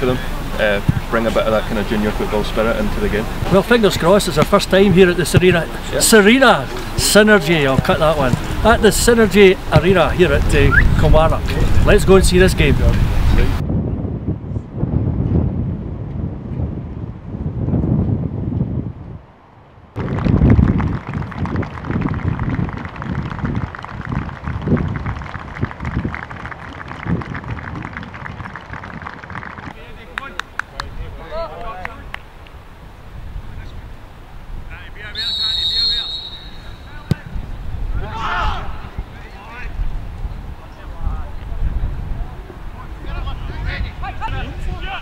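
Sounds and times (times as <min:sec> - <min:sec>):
wind buffeting microphone: 0:07.8 - 0:34.9, 0:36.9 - 0:45.0
referee's whistle: 0:35.1 - 0:37.2
players shouting: 0:38.0 - 0:39.6.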